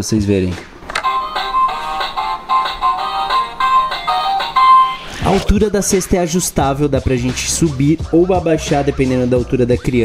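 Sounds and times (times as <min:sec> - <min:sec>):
electronic toy tune: 0:01.0 - 0:05.1.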